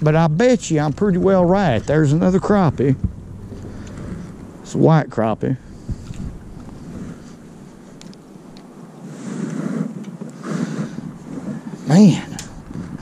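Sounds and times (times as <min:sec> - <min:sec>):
wind and microphone handling rustle: 0:00.0 - 0:13.0.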